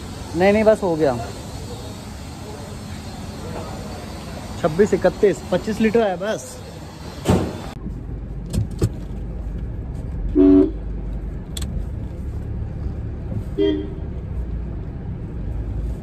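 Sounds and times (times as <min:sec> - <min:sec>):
low vehicle rumble: 0:00.0 - 0:16.0
car horn toots: 0:10.4 - 0:10.8, 0:13.6 - 0:14.0.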